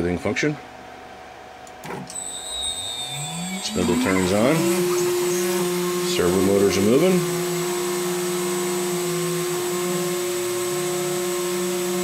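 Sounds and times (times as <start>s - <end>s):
high-pitched electrical whine: 1.9s - 12.0s.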